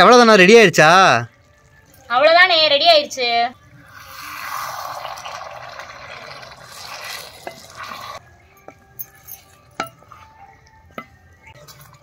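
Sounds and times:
ladle stirring thick gravy: 4.3 - 8.3.

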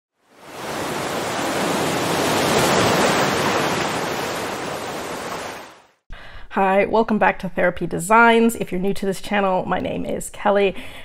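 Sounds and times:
ocean surf wash: 0.2 - 6.0.

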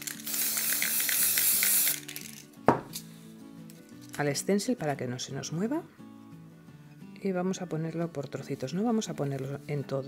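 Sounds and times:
aerosol can spraying hiss: 0.0 - 2.3
soft background music: 0.0 - 10.0.

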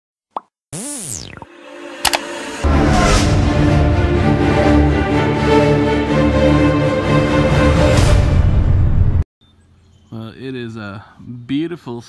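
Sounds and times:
sliding tone rising and falling: 0.7 - 3.3.

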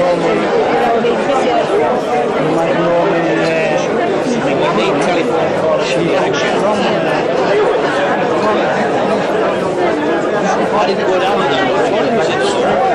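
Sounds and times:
crowd chatter: 0.0 - 12.9.

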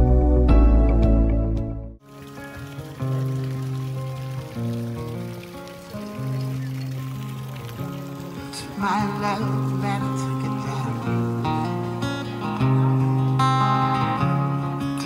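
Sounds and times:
edited music track: 0.0 - 2.0
live music with bass notes: 0.0 - 2.0, 8.8 - 15.0
faint outdoor background noise: 2.0 - 15.0.

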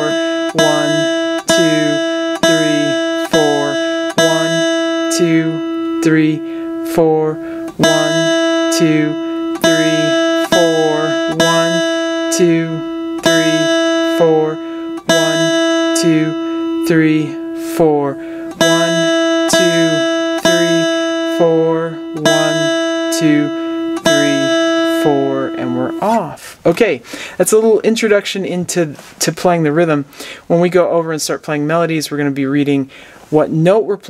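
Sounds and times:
guitar string plucked: 0.0 - 26.4
person counting aloud: 0.0 - 27.0.

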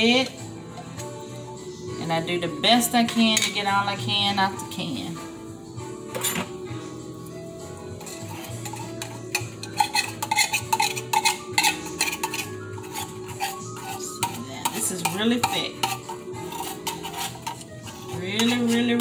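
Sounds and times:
metal spoon scraping tin can: 8.0 - 19.0.

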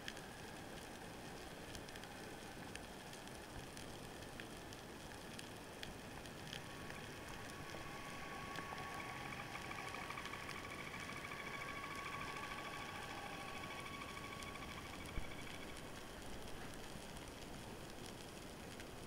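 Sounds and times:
steady underwater whine: 0.0 - 19.0
underwater fine crackling: 0.0 - 19.0.

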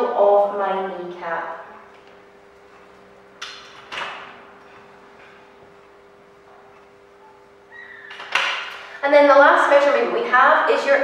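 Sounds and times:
faint room hum: 0.0 - 11.0.

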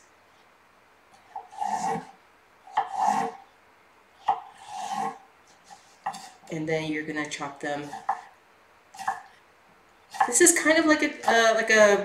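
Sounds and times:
knife slicing cucumber on wooden board: 2.7 - 3.4, 6.0 - 6.4, 7.8 - 8.3, 9.0 - 9.3.

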